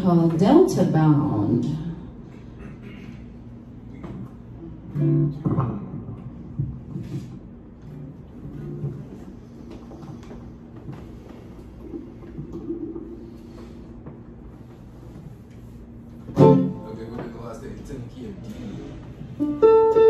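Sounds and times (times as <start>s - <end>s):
guitars played softly: 4.9s - 5.6s, 7.8s - 9.2s, 16.3s - 16.9s, 19.3s - 20.0s.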